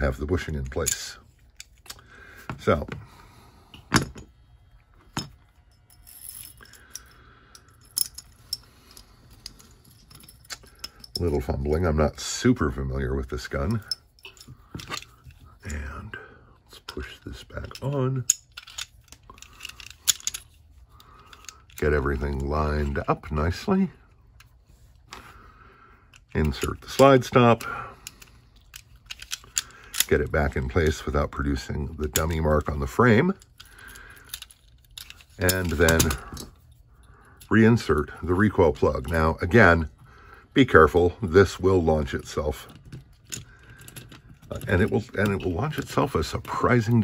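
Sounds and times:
pistol parts clicking and clinking: 0.0 - 3.0, 3.7 - 12.3, 13.4 - 15.5, 16.8 - 25.1, 26.0 - 38.2, 41.4 - 47.0
faint handling noise: 0.0 - 25.4, 40.7 - 47.0.

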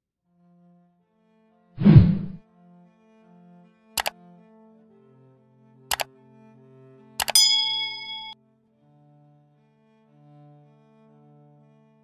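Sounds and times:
soft background music: 2.4 - 12.0
bright bell-like ding: 7.2 - 8.4
sharp double clicks: 7.2 - 8.4.

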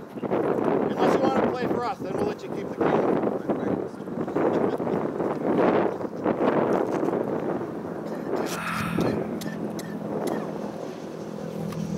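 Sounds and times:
wind buffeting microphone: 0.0 - 11.4.

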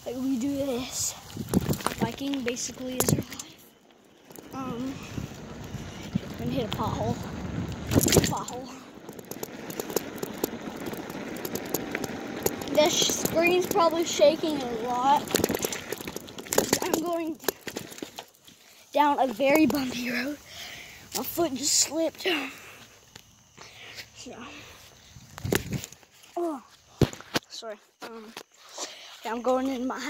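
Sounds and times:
bicycle tyre rumble: 0.0 - 27.6
bike and phone rattling: 0.0 - 30.0
sharp clicks: 7.7 - 18.4
phone rattling: 7.9 - 18.4.

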